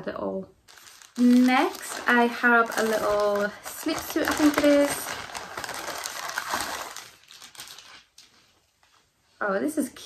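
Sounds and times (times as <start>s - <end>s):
plastic bag crinkling: 0.6s - 8.6s.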